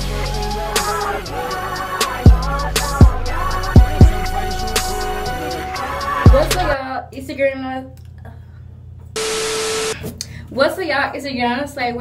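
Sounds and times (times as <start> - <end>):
low room hum: 6.8 - 9.2.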